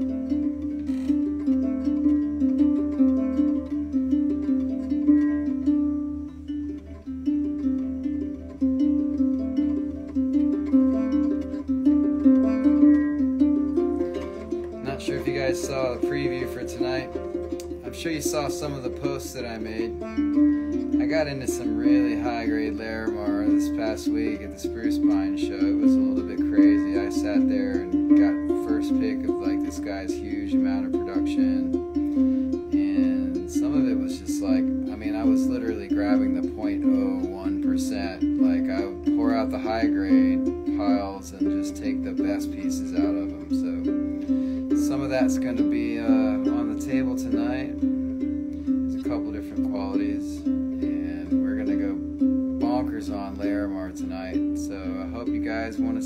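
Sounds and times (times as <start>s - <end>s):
gourd banjo plucked notes: 0.0s - 56.0s.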